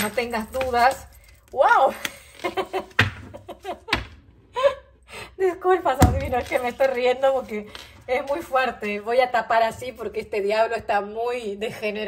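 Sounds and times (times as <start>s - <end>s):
woman laughing: 2.2s - 5.6s.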